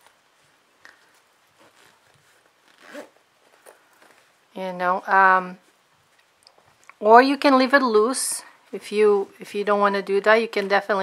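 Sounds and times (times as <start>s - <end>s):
rustling cloth: 0.0s - 11.0s
zipper: 0.9s - 4.3s.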